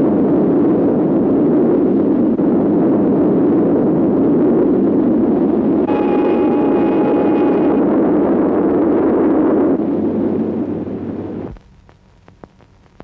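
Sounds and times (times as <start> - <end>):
steam whistle: 5.8 - 9.6.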